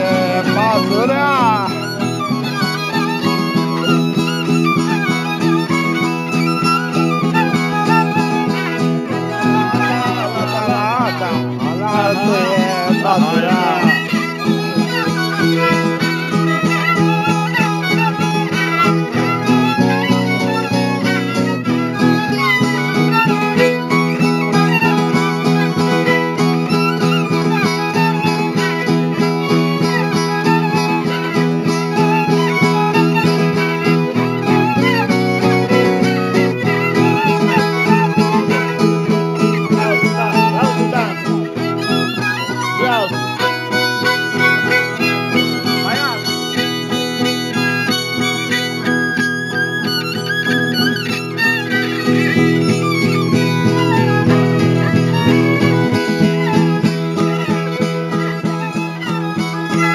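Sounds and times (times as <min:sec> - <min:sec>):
fiddle melody with sliding notes: 0:00.0 - 0:59.9
strummed chord accompaniment: 0:00.0 - 0:59.9.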